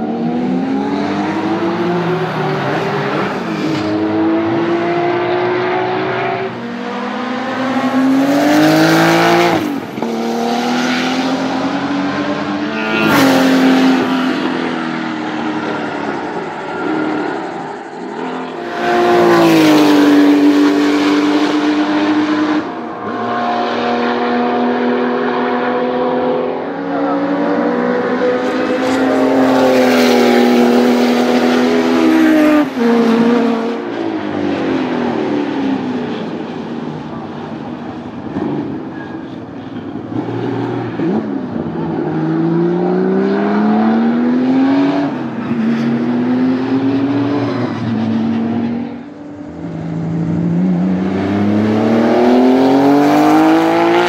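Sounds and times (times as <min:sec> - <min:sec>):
race car engines at full throttle: 0:00.0 - 0:54.0.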